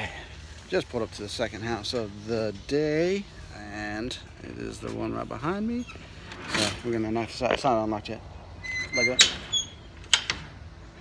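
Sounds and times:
metal gate latch clicking: 0:08.6 - 0:10.6.

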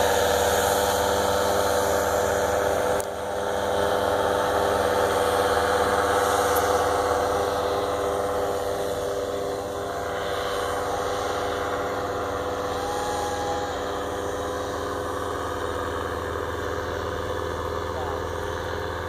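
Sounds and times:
paraglider engine droning overhead: 0:00.0 - 0:19.0.

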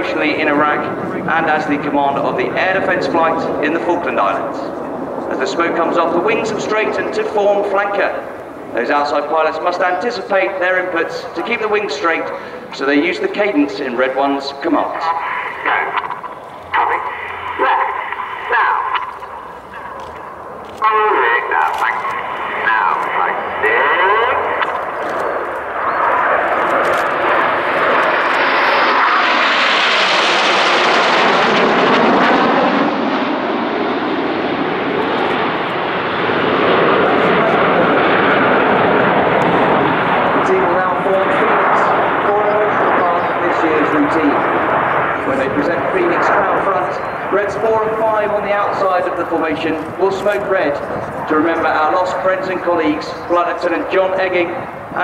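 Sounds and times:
jets flying past: 0:00.0 - 0:55.0.

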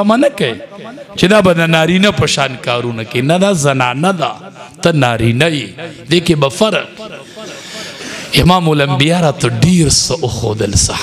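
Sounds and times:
man preaching into microphone: 0:00.0 - 0:11.0.

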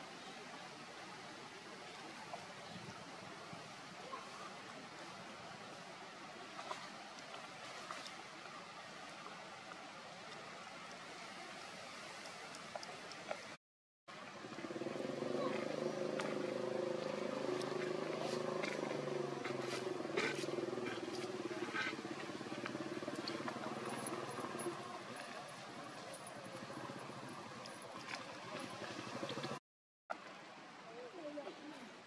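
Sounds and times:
vehicle engine running: 0:14.2 - 0:29.6.

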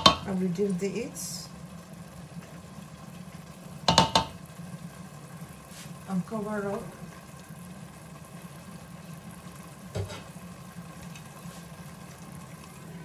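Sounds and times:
low steady hum: 0:00.0 - 0:13.0
stew bubbling in a pot: 0:00.0 - 0:13.0.

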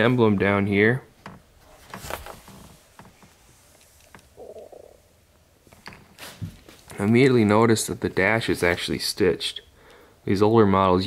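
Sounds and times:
handling rustles: 0:01.2 - 0:04.4.

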